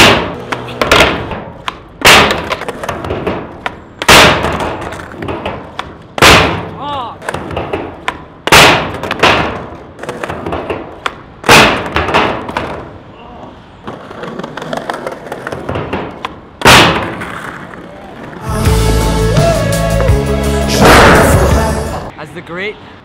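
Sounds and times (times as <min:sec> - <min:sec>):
skateboard smacking down on steel: 0:00.0 - 0:06.4
skateboard wheels rolling on stone: 0:00.0 - 0:19.2.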